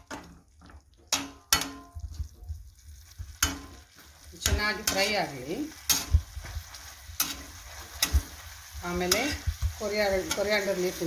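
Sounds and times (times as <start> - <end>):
light sizzle: 0.0 - 11.0
spatula knocking on pan: 1.1 - 2.3, 3.4 - 3.8
spatula scraping a pan: 3.0 - 11.0.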